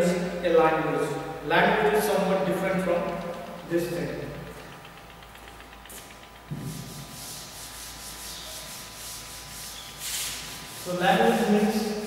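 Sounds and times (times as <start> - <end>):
duster rubbing on blackboard: 5.9 - 12.0.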